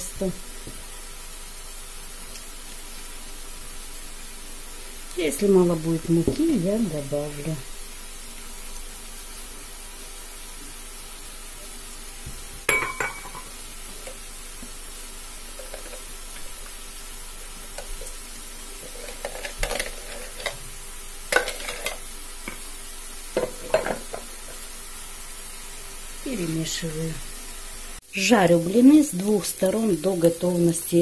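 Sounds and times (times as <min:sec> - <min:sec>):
faint steady hiss: 0:00.0 - 0:31.0.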